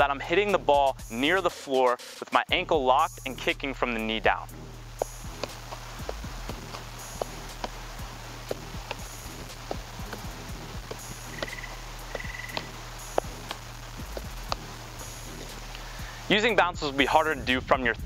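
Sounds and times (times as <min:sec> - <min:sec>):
ball thudding on floor: 0:09.7 - 0:13.6.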